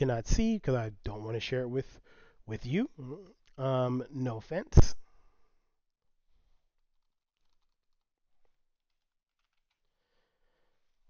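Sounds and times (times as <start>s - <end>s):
keyboard typing: 7.0s - 8.2s, 8.9s - 9.9s.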